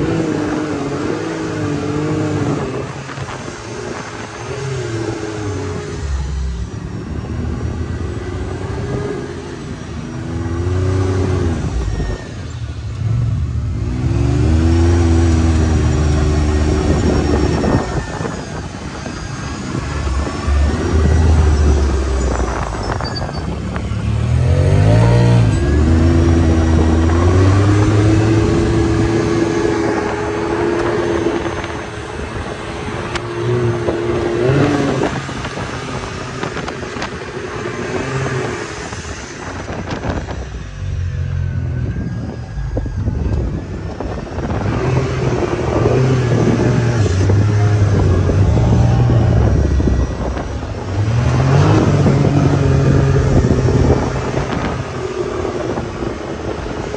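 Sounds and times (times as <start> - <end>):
engine revving: 0.0 - 56.9.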